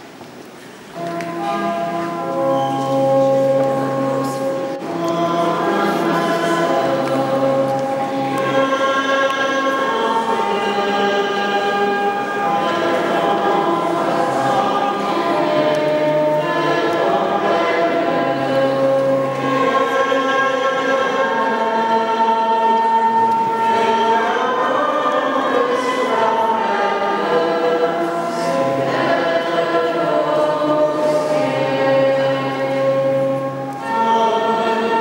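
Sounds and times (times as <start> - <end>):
group singing a hymn: 0.9 - 35.0.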